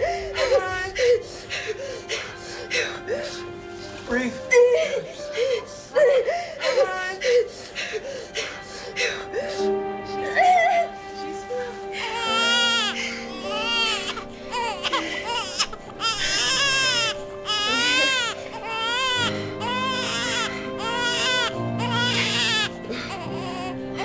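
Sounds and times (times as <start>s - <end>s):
soft music with held chords: 0.0s - 24.0s
newborn baby crying: 12.0s - 24.0s.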